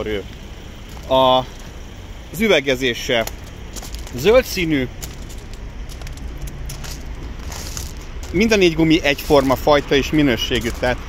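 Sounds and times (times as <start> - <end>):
car engine idling: 0.0 - 11.0
footsteps on gravel: 3.1 - 11.0.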